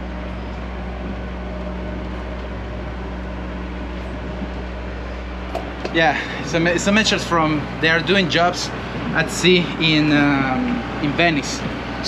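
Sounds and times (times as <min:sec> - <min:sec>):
boat engine humming: 0:00.0 - 0:12.0.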